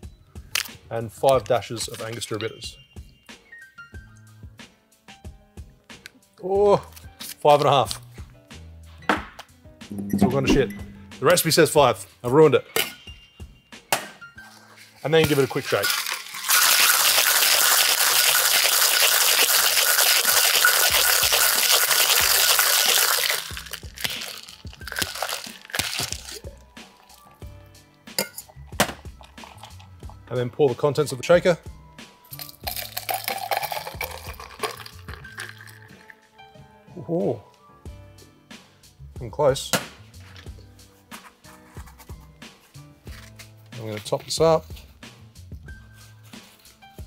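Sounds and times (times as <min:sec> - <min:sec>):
faint background music: 0:00.0 - 0:47.0
metal shaker tins clinking: 0:15.1 - 0:27.2, 0:32.4 - 0:36.1
liquid splashing into glass: 0:15.8 - 0:26.4, 0:32.4 - 0:36.1.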